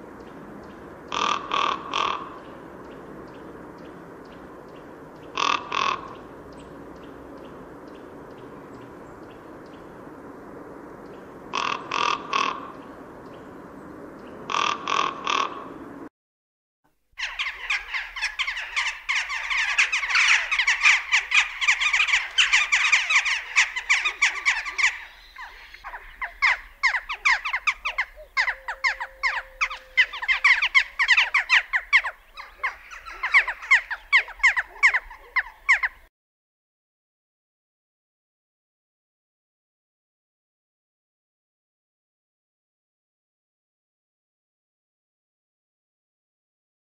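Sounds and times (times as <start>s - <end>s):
jackdaws calling: 0.0s - 10.1s, 11.0s - 15.8s, 17.2s - 36.1s
raven croaking: 0.0s - 16.1s, 17.2s - 36.1s.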